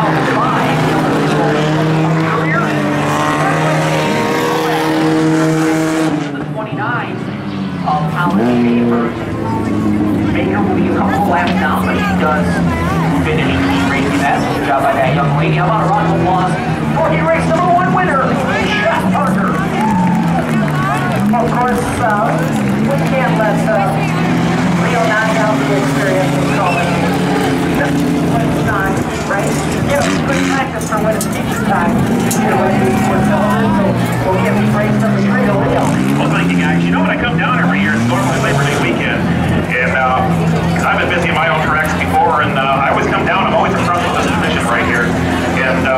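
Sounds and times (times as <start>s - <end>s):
people talking: 0.0s - 45.9s
race car engines revving: 0.0s - 45.9s.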